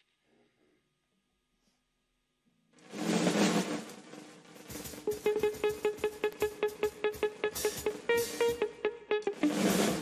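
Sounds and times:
drum roll on drum kit: 2.8s - 8.7s, 9.4s - 10.0s.

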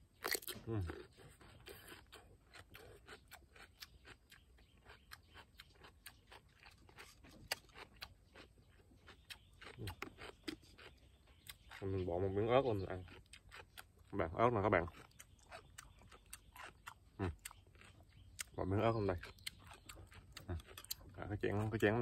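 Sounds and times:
cucumber crunching: 0.0s - 22.0s.

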